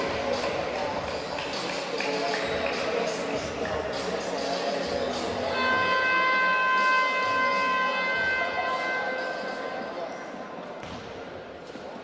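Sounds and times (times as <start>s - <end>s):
game horn buzzer: 5.5s - 9.7s.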